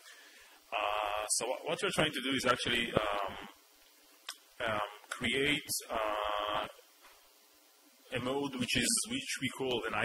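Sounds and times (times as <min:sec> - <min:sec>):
faint room hiss: 0:00.0 - 0:10.0
man saying um: 0:00.7 - 0:01.7, 0:04.6 - 0:06.8.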